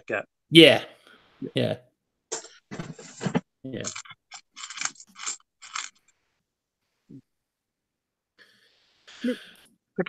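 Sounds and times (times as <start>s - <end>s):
person talking over video call: 0.0s - 4.0s, 9.1s - 9.6s.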